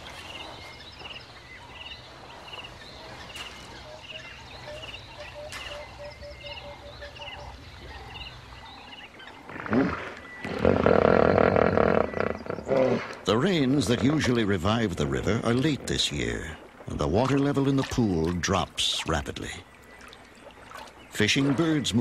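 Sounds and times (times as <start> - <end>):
plovers trilling calls: 1.6 - 16.6
hippo deep grunting call: 9.5 - 14.3.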